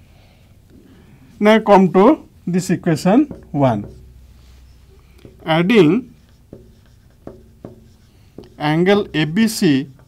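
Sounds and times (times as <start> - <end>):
marker pen writing on whiteboard: 3.0 - 10.0.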